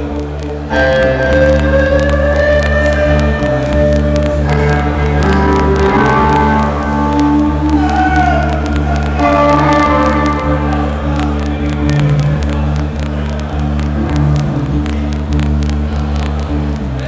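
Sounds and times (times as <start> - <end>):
live rock band playing: 0.6 - 13.1.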